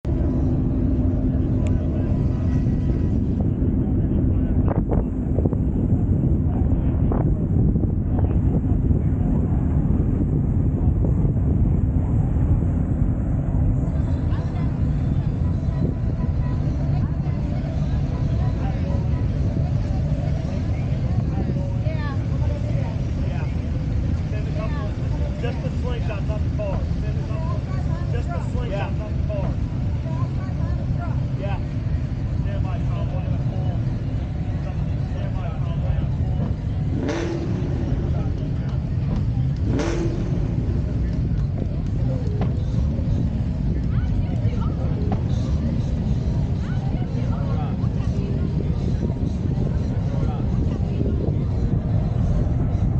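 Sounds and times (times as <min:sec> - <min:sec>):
car engines running: 0:00.0 - 0:52.9
crowd chatter: 0:00.0 - 0:52.9
wind on microphone: 0:00.0 - 0:52.9.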